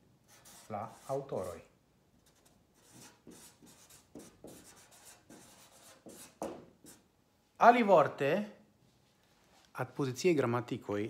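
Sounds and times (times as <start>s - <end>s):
marker pen scratching paper: 0.3s - 1.6s, 2.2s - 7.0s.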